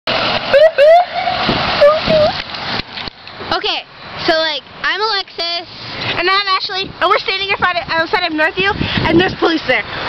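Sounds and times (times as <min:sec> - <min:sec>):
truck passing on wet road: 0:00.1 - 0:10.0
siren whooping: 0:00.5 - 0:02.4.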